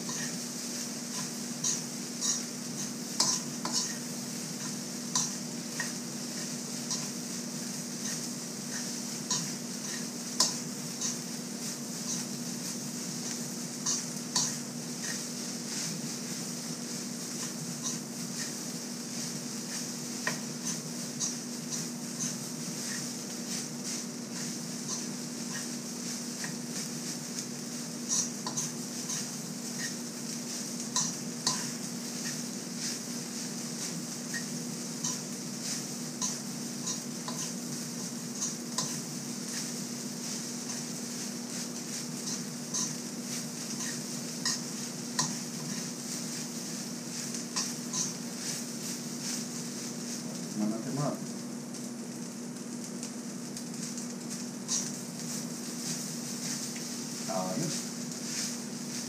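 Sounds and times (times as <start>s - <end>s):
steady hum and hiss: 0.0s - 59.0s
metal spoon scraping a wok: 0.1s - 0.4s, 1.1s - 11.3s, 12.0s - 12.4s, 13.2s - 27.0s, 28.0s - 50.0s, 54.7s - 55.0s.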